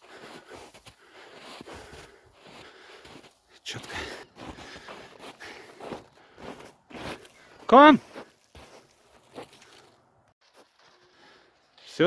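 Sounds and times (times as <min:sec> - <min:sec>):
footsteps crunching in snow: 0:00.0 - 0:12.0.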